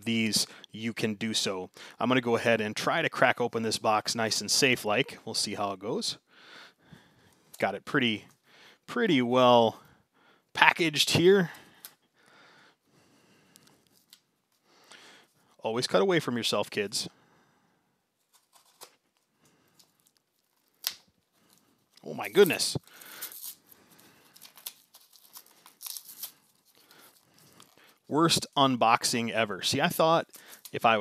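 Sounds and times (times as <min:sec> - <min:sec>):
soft rustle: 0:18.2 - 0:28.1
tape and cardboard tearing: 0:24.4 - 0:26.4.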